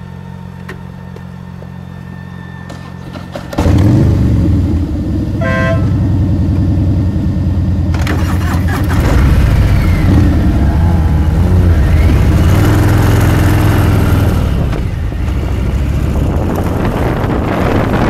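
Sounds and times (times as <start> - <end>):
wind and road noise: 0.0 - 18.0
motorcycle engine pulling away: 1.8 - 18.0
short horn beep: 5.4 - 6.0.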